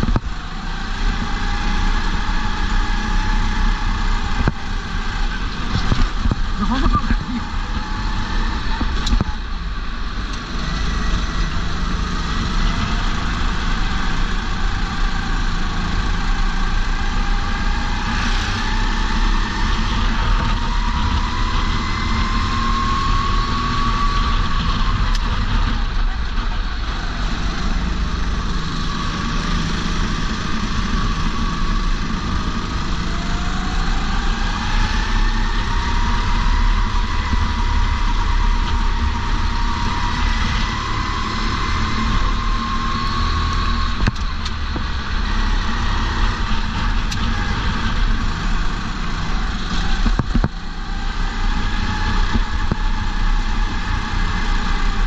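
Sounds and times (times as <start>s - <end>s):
kart engine revving: 0.0s - 55.0s
wind rumble on camera: 0.0s - 55.0s.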